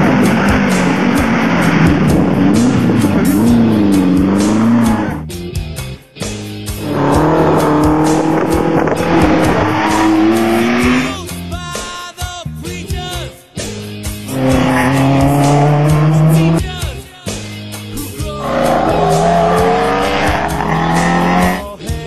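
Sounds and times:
rally car engine revving: 0:00.0 - 0:05.4, 0:06.6 - 0:11.4, 0:14.1 - 0:16.8, 0:17.8 - 0:21.9.

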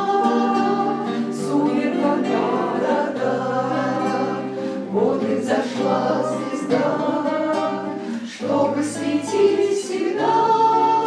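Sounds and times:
acoustic guitars: 0:00.0 - 0:11.0
women and young voices singing: 0:00.0 - 0:11.0.

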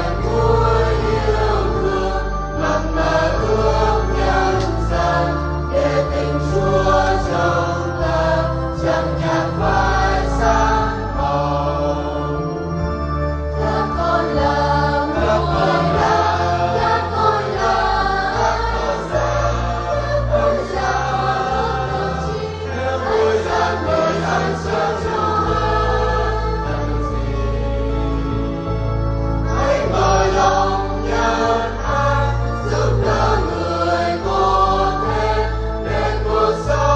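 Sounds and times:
church choir singing a hymn: 0:00.0 - 0:36.9
sustained low instrumental notes: 0:00.0 - 0:36.9.

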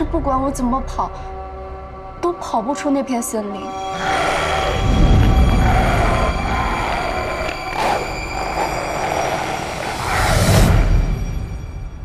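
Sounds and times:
low rumbling drone: 0:03.6 - 0:11.9.

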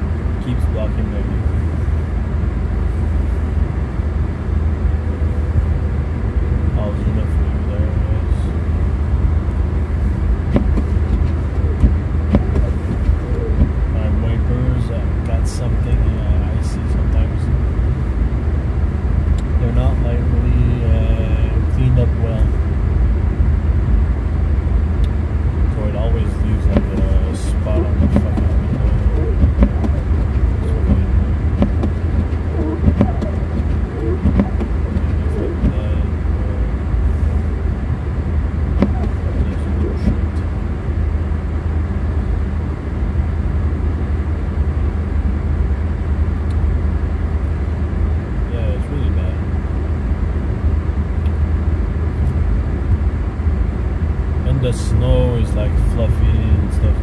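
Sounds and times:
car cabin road and engine rumble: 0:00.0 - 0:57.0.

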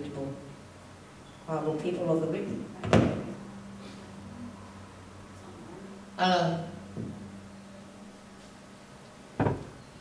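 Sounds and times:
microphone handling thump: 0:09.4 - 0:09.7.

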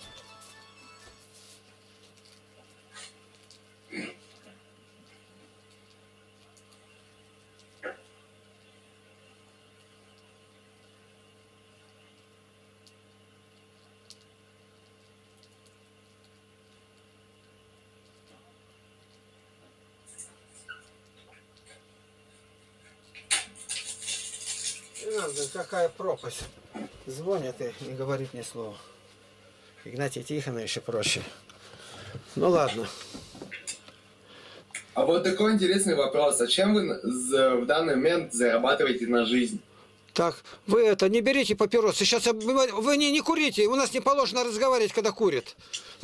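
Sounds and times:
faint electrical hum: 0:00.0 - 0:46.0.

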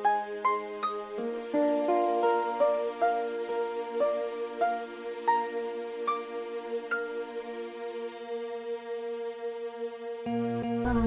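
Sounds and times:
slow music of long held notes: 0:00.0 - 0:11.0.

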